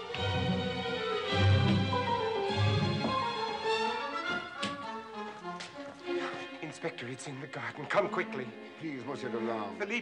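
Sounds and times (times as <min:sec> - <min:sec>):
orchestral bowed strings: 0:00.0 - 0:10.0.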